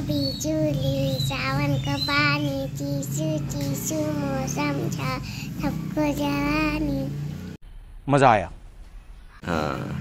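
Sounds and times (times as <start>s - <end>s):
girl singing in a high voice: 0.0s - 7.1s.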